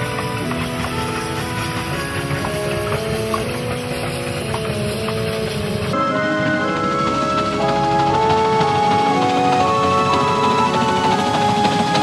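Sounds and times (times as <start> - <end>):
background music: 0.0 - 12.0
train wagons rumbling past: 0.0 - 12.0.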